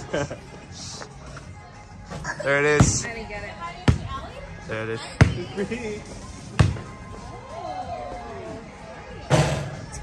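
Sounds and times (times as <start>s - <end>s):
faint music with gliding tones: 0.0s - 10.0s
basketball bouncing on concrete: 2.8s - 3.1s, 3.8s - 4.2s, 5.2s - 5.6s, 6.6s - 6.9s.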